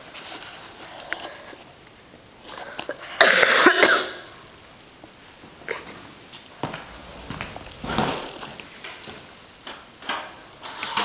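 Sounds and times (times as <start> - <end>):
person coughing: 3.2 - 4.2.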